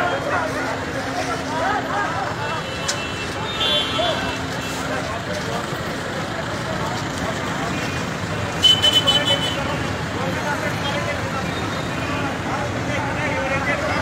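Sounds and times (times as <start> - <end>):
crowd voices: 0.0 - 14.0
street traffic: 0.0 - 14.0.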